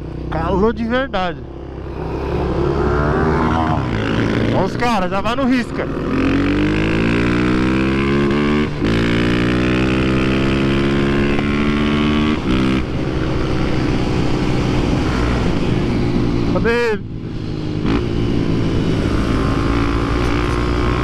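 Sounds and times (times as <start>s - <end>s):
motorcycle engine accelerating: 0.0s - 21.0s.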